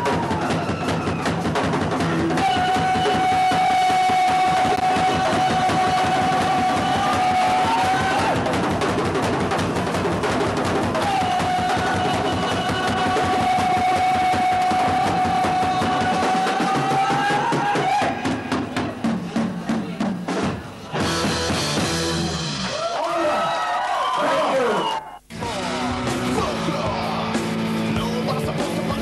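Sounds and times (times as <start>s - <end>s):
live rock band with drums: 0.0s - 23.0s, 24.9s - 29.0s.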